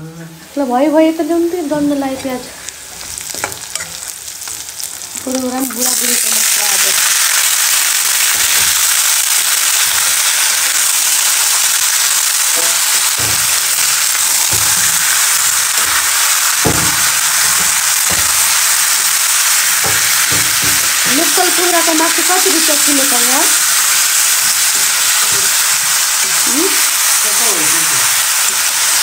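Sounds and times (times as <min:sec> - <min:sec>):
food sizzling in hot oil: 0:00.4 - 0:29.0.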